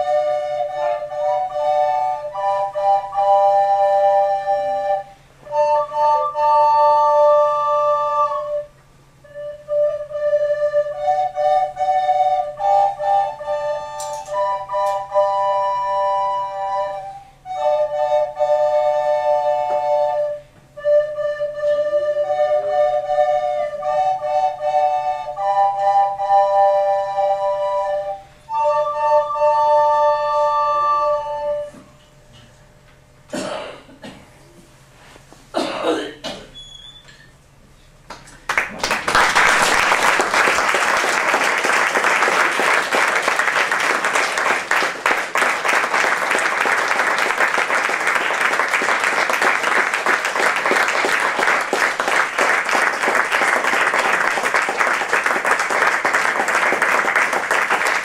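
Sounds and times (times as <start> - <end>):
recorder ensemble playing: 0.0 - 32.0, 39.1 - 58.0.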